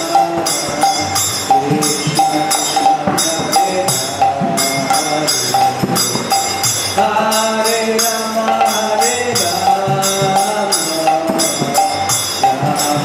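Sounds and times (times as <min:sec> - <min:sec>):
hand cymbals ringing: 0:00.0 - 0:13.0
hand drum playing: 0:00.0 - 0:13.0.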